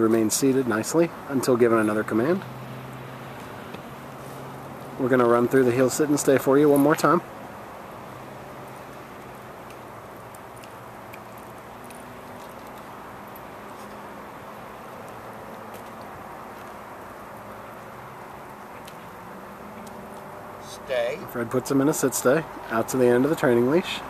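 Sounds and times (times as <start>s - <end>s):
road traffic hum: 0.0s - 24.0s.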